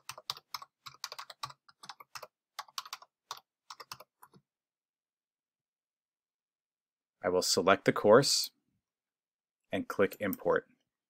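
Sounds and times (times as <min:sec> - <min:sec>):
computer keyboard typing: 0:00.0 - 0:04.4.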